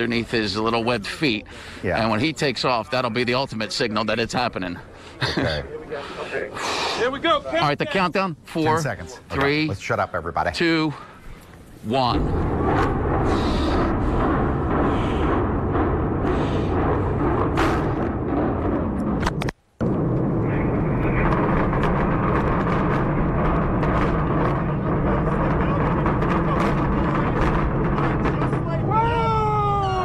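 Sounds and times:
building collapse rumble: 0.0s - 30.0s
demolition charges banging: 11.0s - 30.0s
people whooping and cheering: 28.9s - 30.0s.

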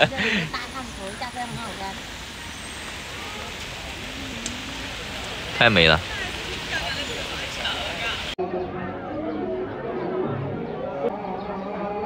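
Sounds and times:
traffic on wet roads: 0.0s - 8.4s
faint voices: 2.9s - 12.0s.

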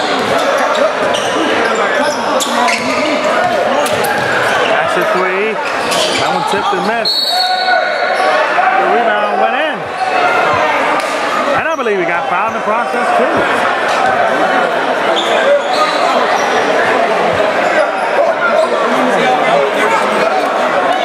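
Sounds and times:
people talking in echoing hall: 0.0s - 21.0s
high whistle: 7.0s - 8.2s.

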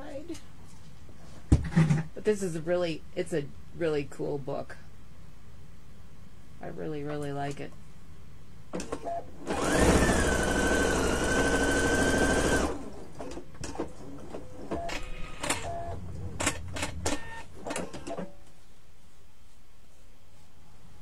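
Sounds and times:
sewing machine stitching: 8.8s - 13.0s.

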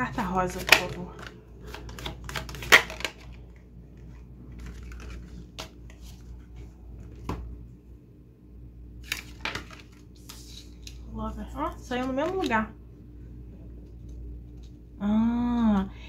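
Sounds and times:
cards shuffled by hand: 0.5s - 7.3s, 9.0s - 11.0s.

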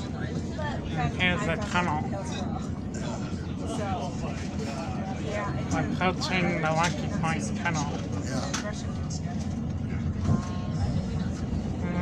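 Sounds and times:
faint voices: 0.0s - 12.0s
train low rumble: 0.0s - 12.0s.

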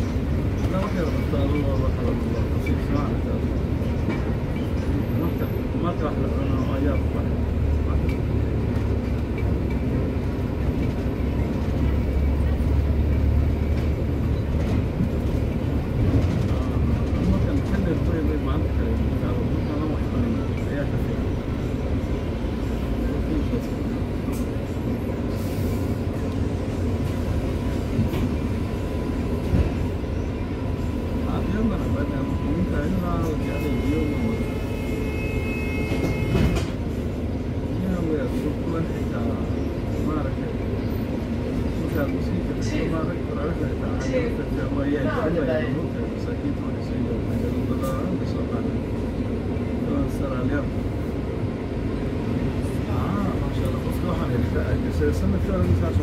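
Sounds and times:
bus engine and road rumble: 0.0s - 56.0s
indistinct passenger chatter: 0.0s - 56.0s.

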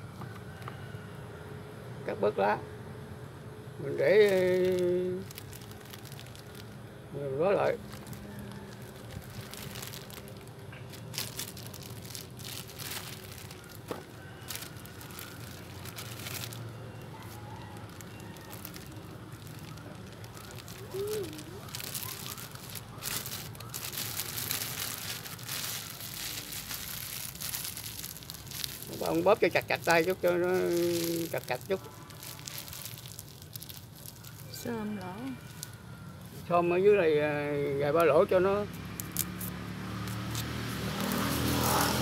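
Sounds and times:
plastic bag crinkling: 4.1s - 35.9s, 39.0s - 42.0s.

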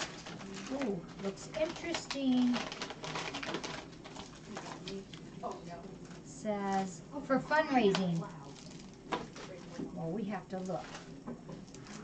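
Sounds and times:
paper packaging rustling: 0.0s - 6.2s.

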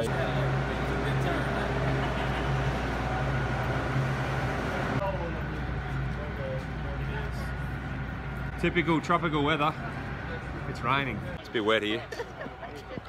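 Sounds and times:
people talking: 0.0s - 3.7s, 5.0s - 7.6s, 8.6s - 13.0s
faint voices outdoors: 0.0s - 4.1s, 5.0s - 13.0s
bus engine idling: 0.0s - 13.0s.

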